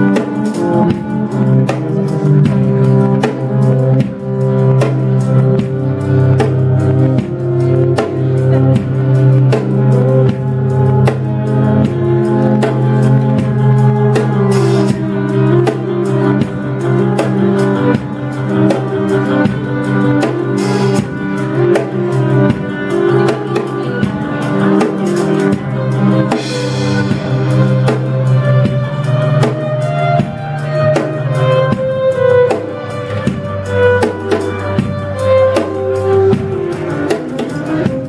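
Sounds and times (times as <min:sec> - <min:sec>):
drum kit beat: 0:00.0 - 0:38.0
upright bass: 0:00.0 - 0:38.0
violin: 0:00.0 - 0:38.0.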